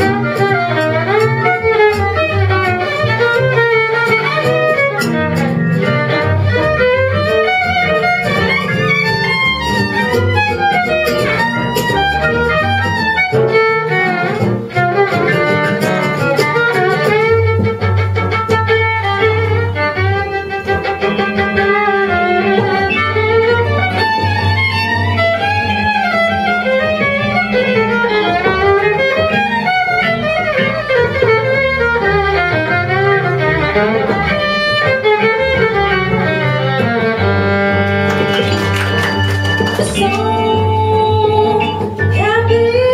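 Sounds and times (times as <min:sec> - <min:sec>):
acoustic guitar: 0:00.0 - 0:42.9
bowed violin lead: 0:00.0 - 0:42.9
walking double bass: 0:00.0 - 0:42.9
keyboards: 0:37.8 - 0:42.9.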